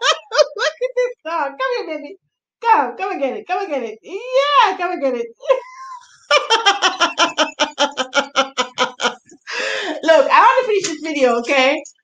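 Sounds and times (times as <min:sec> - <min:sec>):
woman laughing heartily: 0:00.0 - 0:01.0, 0:05.8 - 0:10.2
short breathy sound: 0:09.5 - 0:10.0.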